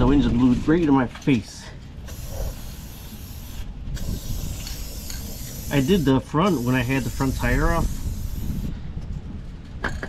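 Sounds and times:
wind rumbling on microphone: 0:00.0 - 0:01.2, 0:01.8 - 0:10.0
aerosol spray can hissing: 0:02.0 - 0:08.7.

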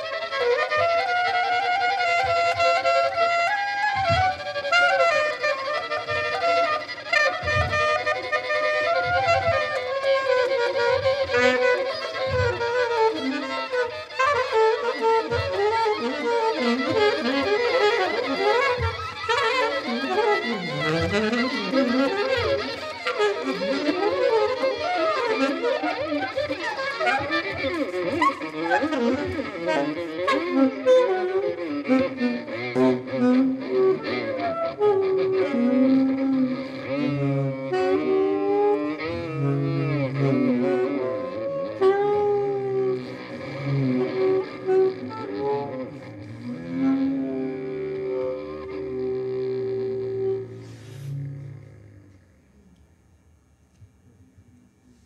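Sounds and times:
saxophone and violin duo: 0:00.0 - 0:53.9.

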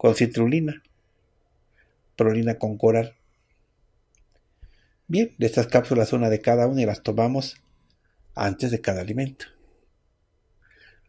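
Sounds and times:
man speaking: 0:00.0 - 0:00.8, 0:02.2 - 0:03.1, 0:05.1 - 0:07.6, 0:08.4 - 0:09.5
faint clicks: 0:03.5 - 0:04.8.

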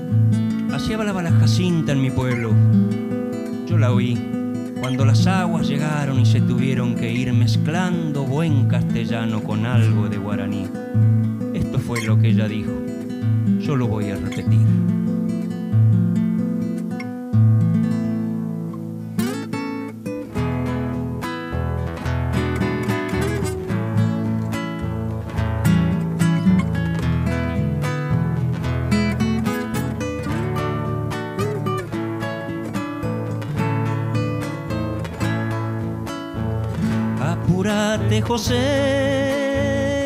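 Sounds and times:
classical guitars playing: 0:00.0 - 0:40.0.

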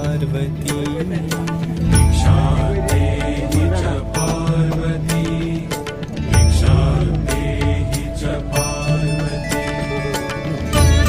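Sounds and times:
devotional music with held tones: 0:00.0 - 0:11.0.

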